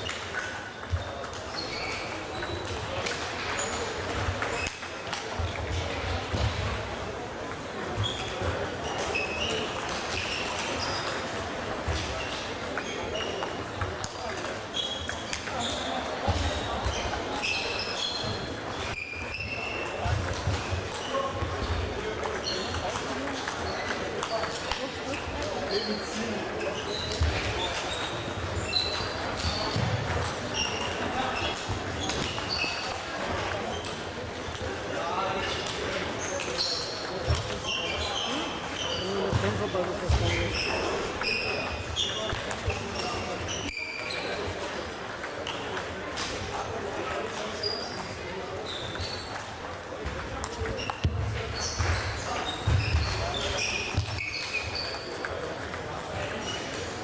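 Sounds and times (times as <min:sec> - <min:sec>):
ball bounces from other tables: 0:00.0 - 0:57.0
table tennis balls clicking: 0:00.1 - 0:06.7, 0:07.4 - 0:18.9, 0:19.8 - 0:34.8, 0:39.4 - 0:48.0, 0:52.9 - 0:57.0.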